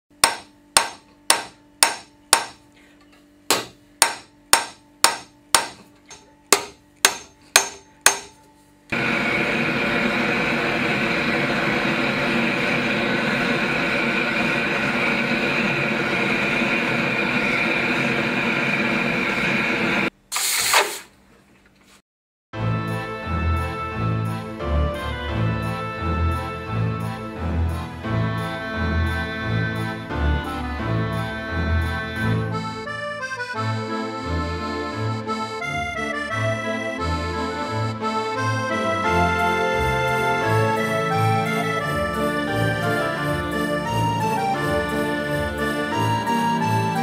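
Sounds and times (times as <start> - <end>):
hammer striking copper sheet: 0.1 - 2.6, 3.5 - 8.4
gas torch running: 8.9 - 21.2.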